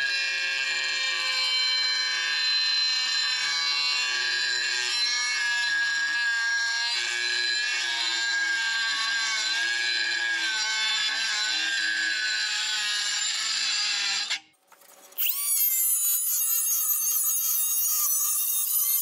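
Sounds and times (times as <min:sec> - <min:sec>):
cut-off tool grinding tile: 0:09.1 - 0:19.0.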